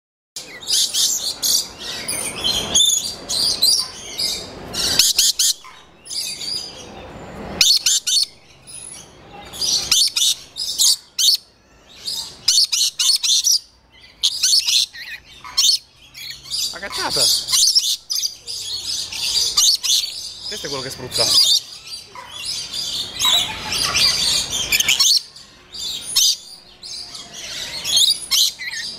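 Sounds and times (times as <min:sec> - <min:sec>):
lorikeets screeching chatter: 0:00.4 - 0:28.9.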